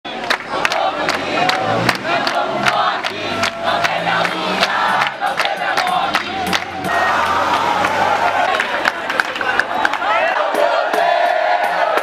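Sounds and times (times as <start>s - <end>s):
crowd clapping in time: 0.1s - 11.3s
crowd chanting and shouting: 0.1s - 12.0s.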